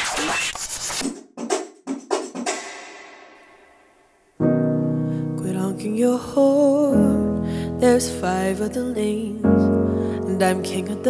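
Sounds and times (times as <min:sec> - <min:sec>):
grand piano chord: 0:04.4 - 0:11.0.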